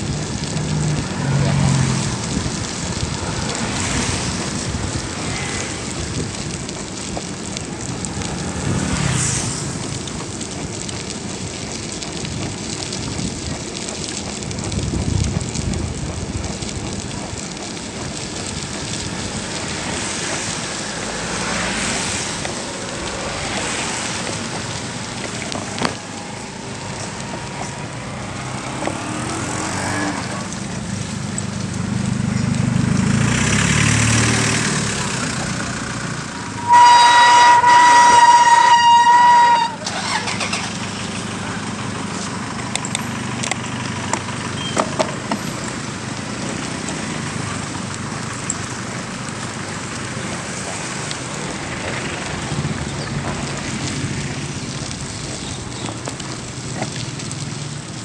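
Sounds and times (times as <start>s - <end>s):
wind noise: 0.0s - 30.9s
street traffic: 0.0s - 58.0s
vehicle rumbling past: 0.0s - 58.0s
long vehicle horn toot: 36.4s - 40.6s.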